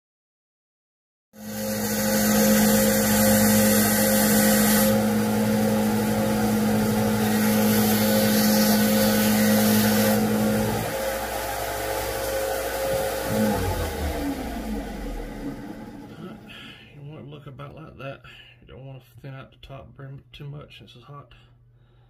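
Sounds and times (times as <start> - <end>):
sander motor hum: 1.4 - 16.6
metal grinding on abrasive: 12.7 - 16.3.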